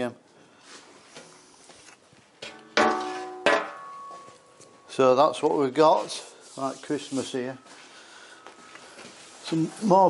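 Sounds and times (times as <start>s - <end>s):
sheet metal cover knocked ringing: 2.7s - 4.3s.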